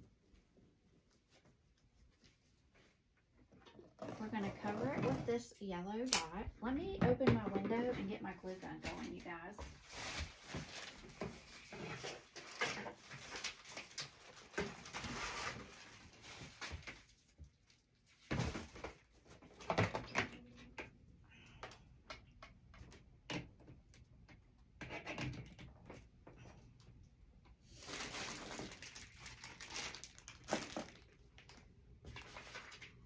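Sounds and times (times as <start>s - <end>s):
rummaging through craft supplies: 1.1s - 21.0s, 21.6s - 33.0s.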